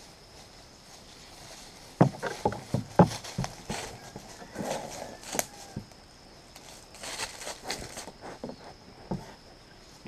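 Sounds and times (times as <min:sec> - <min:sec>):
goat hooves on wooden deck: 0:02.0 - 0:04.6.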